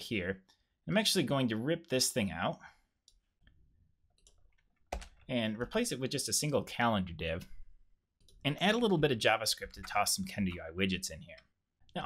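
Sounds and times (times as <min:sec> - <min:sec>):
keyboard and mouse clicks: 0:04.1 - 0:05.8, 0:09.6 - 0:10.7.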